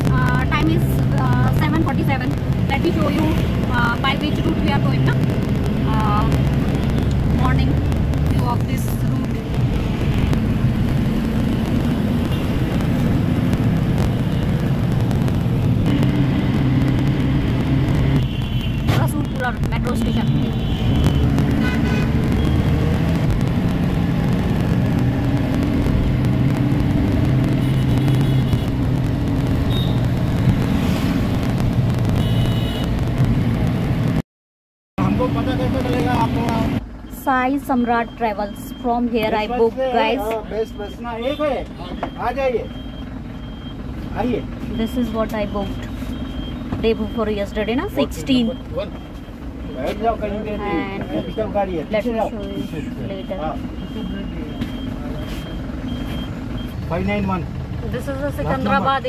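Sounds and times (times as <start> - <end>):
engine and road noise in cabin: 0.0 - 34.2, 35.0 - 59.0.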